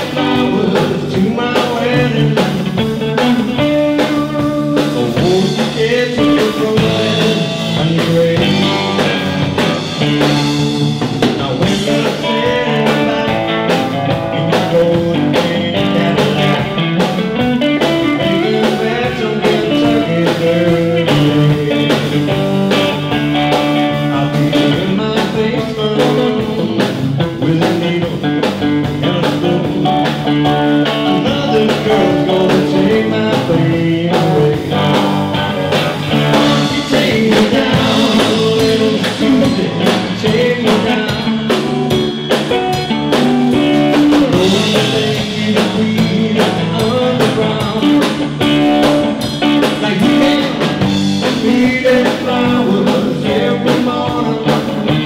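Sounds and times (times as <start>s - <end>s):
bass guitar: 0.0s - 55.0s
drum kit: 0.0s - 55.0s
electric guitar: 0.0s - 55.0s.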